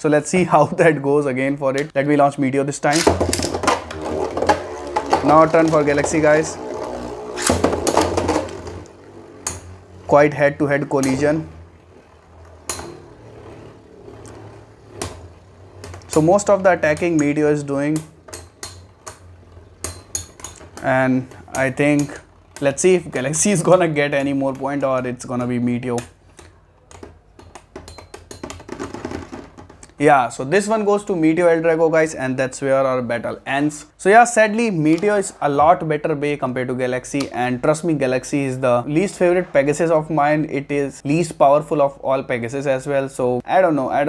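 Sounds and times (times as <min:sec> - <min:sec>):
tops clicking and knocking: 0:02.9 - 0:10.0, 0:14.2 - 0:30.0
spinning top whirring: 0:03.0 - 0:25.0.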